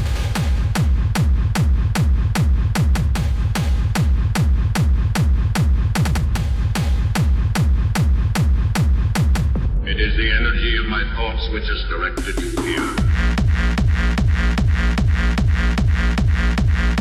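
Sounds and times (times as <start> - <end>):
heavy kick drum: 0.0 - 10.1, 12.2 - 17.0
hard dance electronic music: 0.0 - 17.0.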